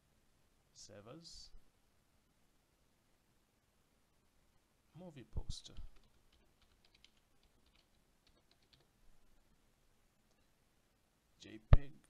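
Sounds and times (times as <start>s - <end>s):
typing on computer keyboard: 5.7s - 8.9s.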